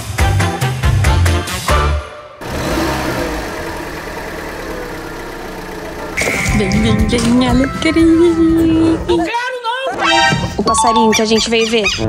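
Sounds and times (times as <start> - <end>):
upbeat music with steady beat: 0.0 - 2.0
car running from inside cabin: 2.4 - 9.2.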